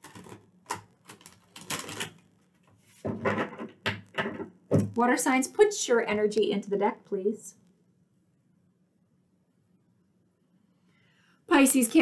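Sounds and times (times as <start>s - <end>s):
cards being shuffled: 0.0s - 3.0s.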